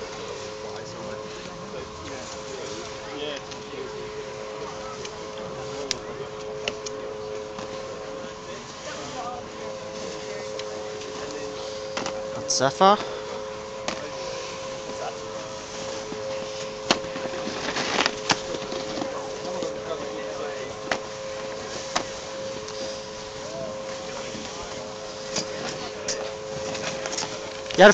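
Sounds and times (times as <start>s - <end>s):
two-tone machine hum: 0.0s - 27.9s.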